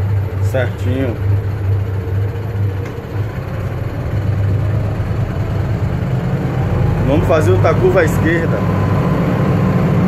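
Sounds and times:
bus diesel engine running: 0.0s - 10.0s.

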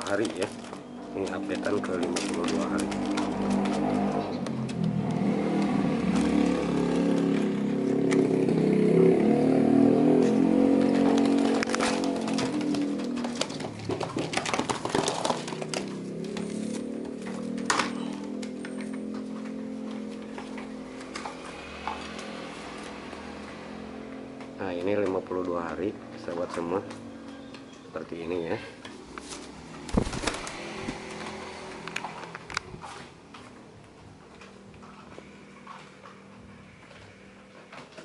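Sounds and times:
knocks and rattles of wire cage: 0.0s - 7.5s, 10.1s - 22.2s, 29.7s - 31.9s
engine-like drone: 0.0s - 28.2s.

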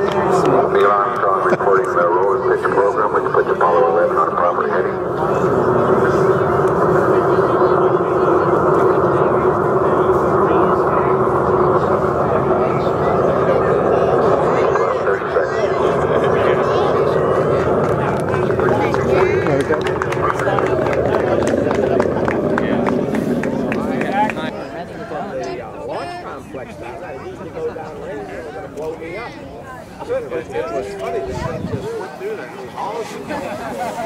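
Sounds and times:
rocket launch roar over loudspeaker: 0.0s - 24.6s
voices: 0.0s - 34.0s.

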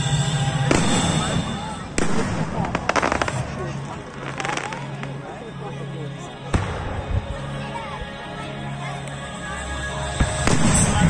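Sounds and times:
fireworks bangs: 0.0s - 5.2s, 10.2s - 11.0s
crackling fireworks pops: 0.7s - 5.2s, 10.2s - 11.0s.

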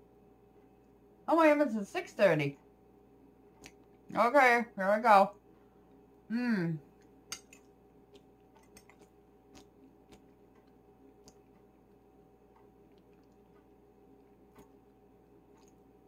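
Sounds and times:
faint steady hum: 0.0s - 16.0s
faint chewing: 3.4s - 4.1s, 5.3s - 16.0s.

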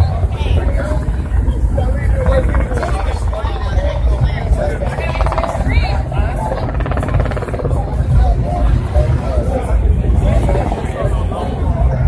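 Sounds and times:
crowd voices: 0.0s - 12.0s
low traffic rumble: 0.0s - 12.0s.

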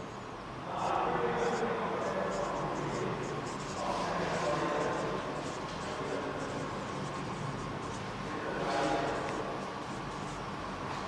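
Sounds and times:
marker scratching on whiteboard: 0.8s - 10.5s.

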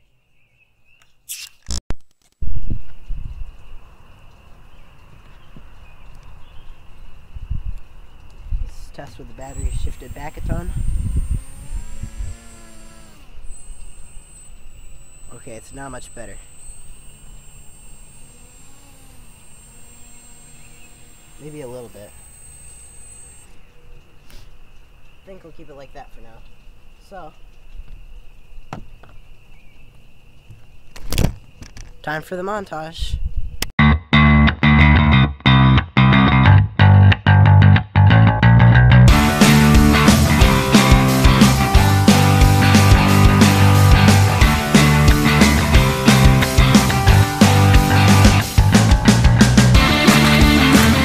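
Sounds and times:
faint high-pitched whine: 7.5s - 23.6s
sharp clicks: 9.0s - 25.3s, 39.1s - 51.0s.

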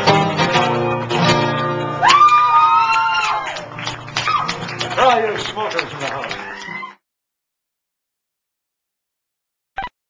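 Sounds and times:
acoustic guitar strumming: 0.0s - 2.2s, 3.6s - 6.2s.

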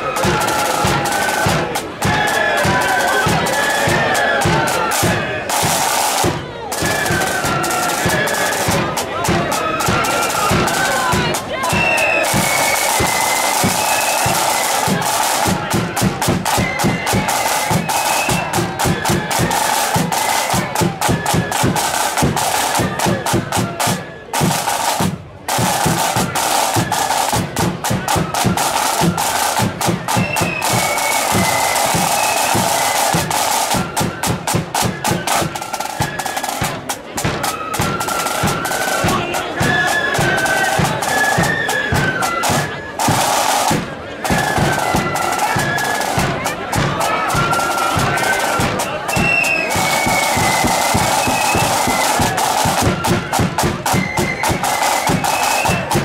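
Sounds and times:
flutes playing melody: 0.0s - 56.0s
snare and bass drumming: 0.0s - 56.0s.

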